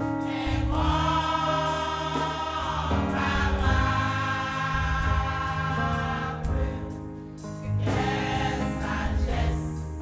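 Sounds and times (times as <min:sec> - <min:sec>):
women's choir singing a hymn: 0:00.0 - 0:10.0.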